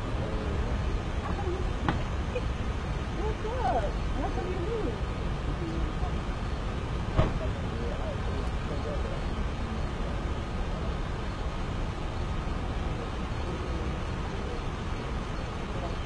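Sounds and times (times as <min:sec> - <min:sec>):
faint distant voices: 0:00.0 - 0:16.0
low vehicle rumble: 0:00.0 - 0:16.0
car door shutting: 0:07.1 - 0:07.5.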